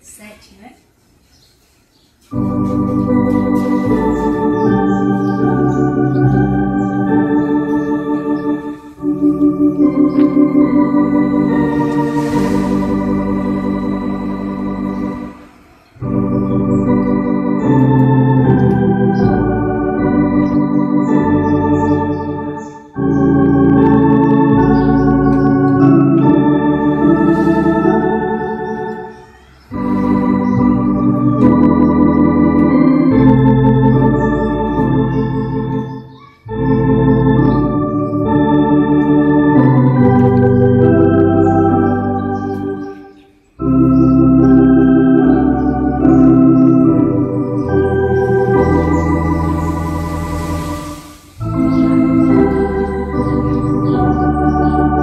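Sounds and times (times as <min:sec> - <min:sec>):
church organ playing hymn: 0:02.2 - 0:55.0.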